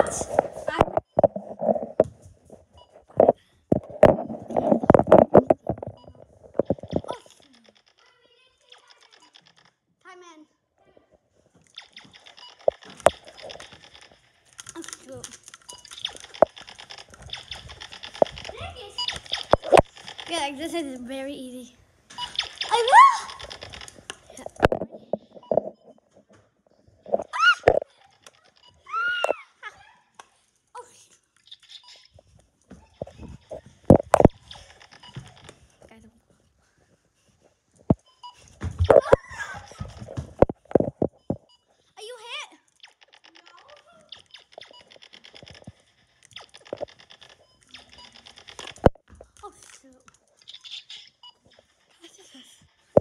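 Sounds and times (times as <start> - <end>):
sharp knocks and thumps: 0.1 - 7.2, 38.6 - 41.5
sharp clicks and knocks: 11.6 - 20.5.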